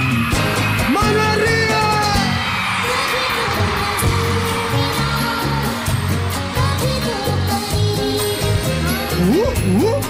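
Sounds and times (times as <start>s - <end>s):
crowd noise: 0.0s - 10.0s
live band playing: 0.0s - 10.0s.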